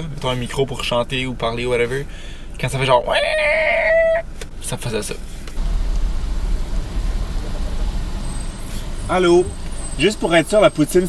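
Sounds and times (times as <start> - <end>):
car cabin engine and tyre rumble: 0.0 - 3.2, 4.1 - 11.0.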